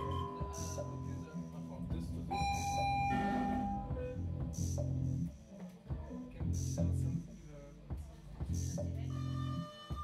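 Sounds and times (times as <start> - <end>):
held electronic tones: 2.3 - 4.4.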